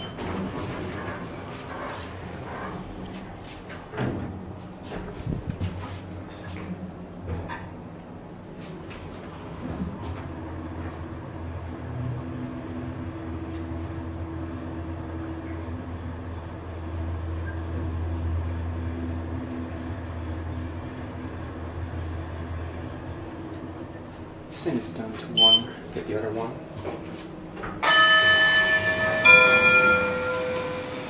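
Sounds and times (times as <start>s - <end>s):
elevator hum and rumble: 0.0s - 31.0s.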